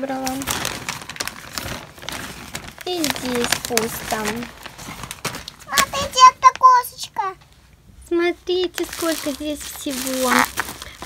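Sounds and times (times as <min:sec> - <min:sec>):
plastic bags rustling and crinkling: 0:00.0 - 0:07.0, 0:08.5 - 0:11.0.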